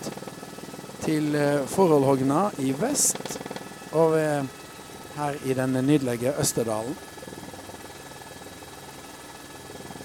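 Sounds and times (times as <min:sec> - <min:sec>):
aircraft engine drone in cabin: 0:00.0 - 0:10.0.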